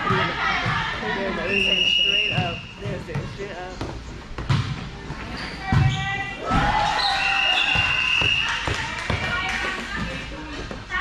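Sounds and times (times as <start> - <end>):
players' voices: 0.0 - 11.0
volleyball bouncing on floor: 2.3 - 4.9, 5.6 - 6.7, 7.6 - 10.8.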